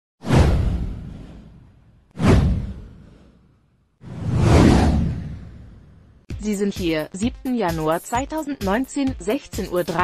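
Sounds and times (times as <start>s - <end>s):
deep boom: 0.2s - 3.2s
whoosh sound effect: 0.2s - 6.0s.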